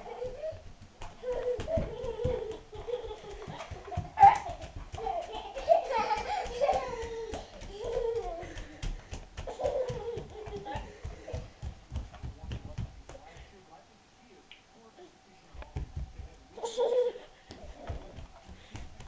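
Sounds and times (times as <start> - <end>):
footsteps on wooden floor: 0.0 - 13.6, 15.6 - 19.0.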